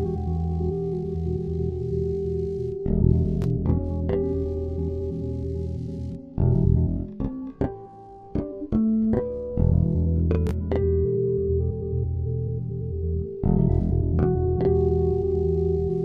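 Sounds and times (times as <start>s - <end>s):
electric bass riff: 0.0s - 16.0s.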